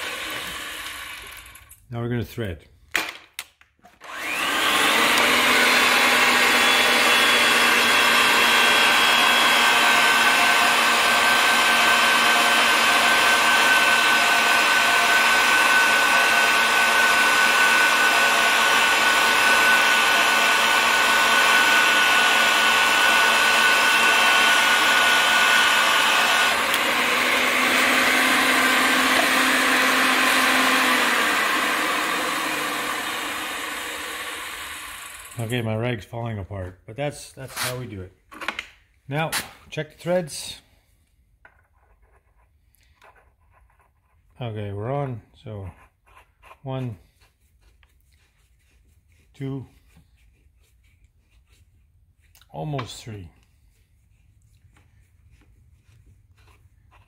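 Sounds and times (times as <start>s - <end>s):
pipe threading machine motor: 0.0s - 1.6s, 4.0s - 35.6s.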